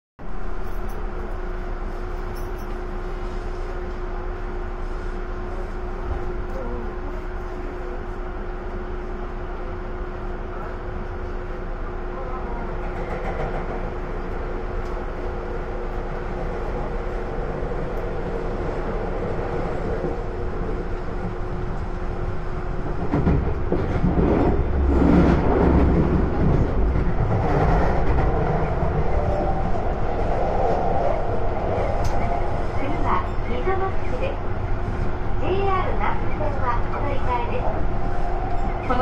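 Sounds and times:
train running: 0:00.2 - 0:39.0.

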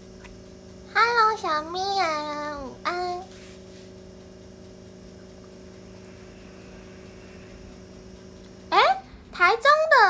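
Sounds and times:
steady low electrical hum: 0:00.0 - 0:10.0.

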